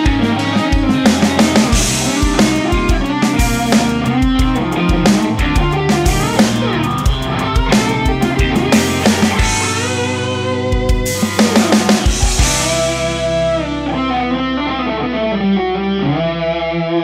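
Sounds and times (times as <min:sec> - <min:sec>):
backing track with drum kit: 0:00.0 - 0:15.1
electric guitar solo: 0:00.0 - 0:17.0.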